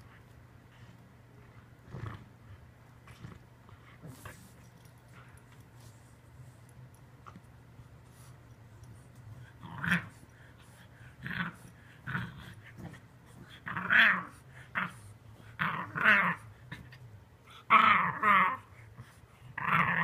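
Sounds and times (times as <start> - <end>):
dog growling: 1.8 - 4.5, 9.5 - 20.0.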